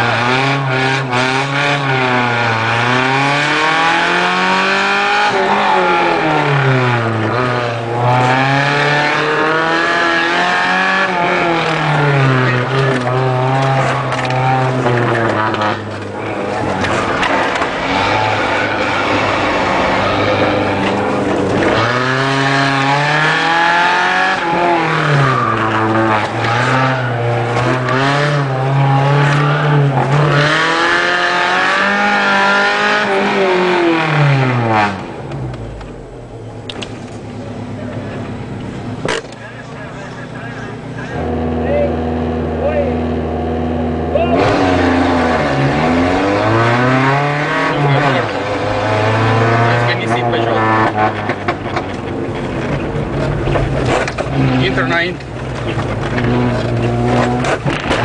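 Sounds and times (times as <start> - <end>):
car engine revving and shifting gears: 0.0 - 58.0.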